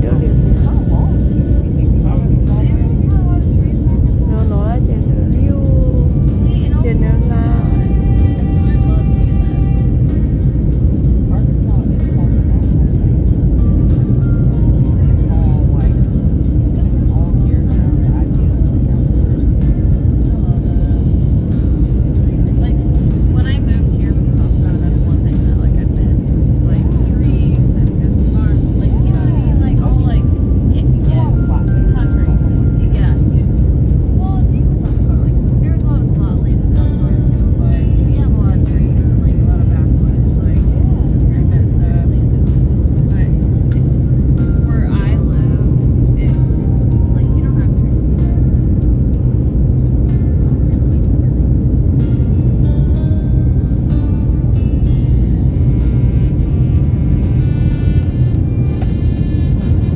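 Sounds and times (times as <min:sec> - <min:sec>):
airliner cabin rumble: 0:00.0 - 0:59.9
faint voices: 0:00.0 - 0:59.9.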